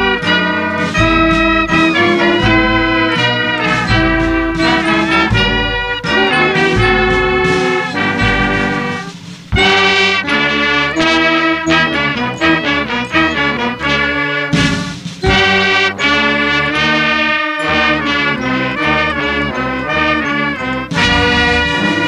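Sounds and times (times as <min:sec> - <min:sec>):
brass and wind band playing: 0:00.0 - 0:22.0.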